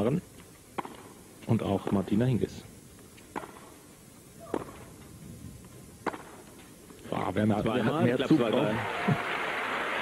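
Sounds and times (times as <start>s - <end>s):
rackets hitting tennis ball: 0.7s - 1.2s, 3.1s - 3.8s, 4.4s - 5.1s, 5.7s - 7.3s.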